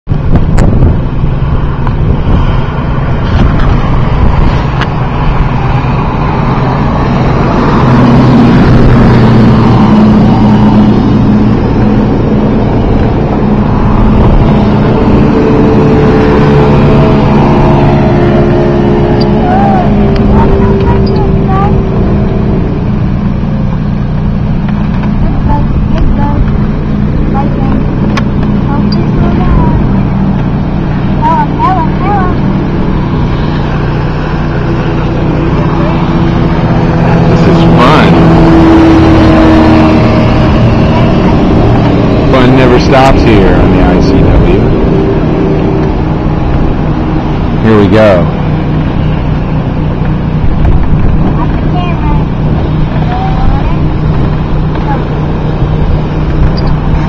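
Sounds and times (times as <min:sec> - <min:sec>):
heavy low rumble: 0:00.0 - 0:57.0
outboard motor passing by: 0:00.0 - 0:57.0.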